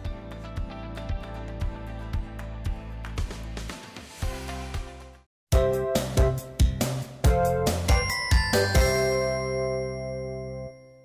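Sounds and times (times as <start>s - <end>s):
bell-like jingle chord: 7.3s - 11.0s.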